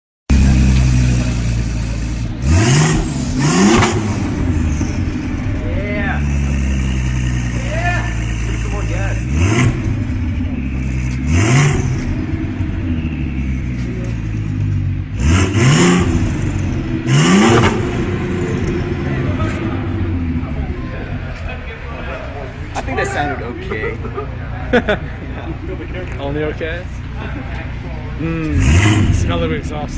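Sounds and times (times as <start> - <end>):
car engine revving: 0.3 - 22.8, 25.8 - 29.9
car engine idling: 0.3 - 29.9.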